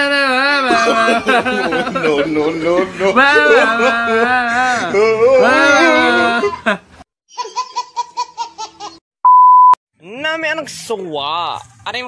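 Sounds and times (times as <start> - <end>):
baby laughing: 0.6 - 9.0.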